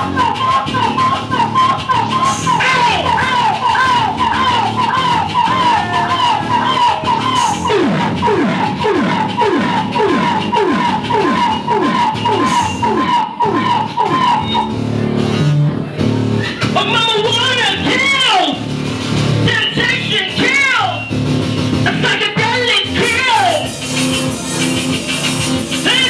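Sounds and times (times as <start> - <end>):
bending high tones: 0.0 - 15.7
wobbling synth riff: 0.0 - 19.6
falling pitch sweep: 0.4 - 16.6.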